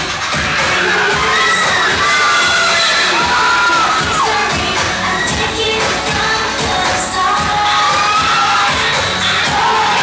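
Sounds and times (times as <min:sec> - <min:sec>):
crowd screaming and cheering: 0:00.0 - 0:10.0.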